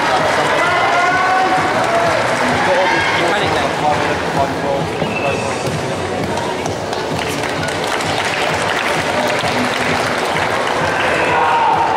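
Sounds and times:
audience applauding: 6.7s - 11.9s.

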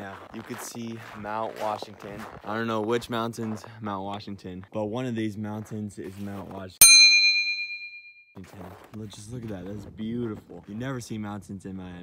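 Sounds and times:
bell-like ding: 6.8s - 8.3s.

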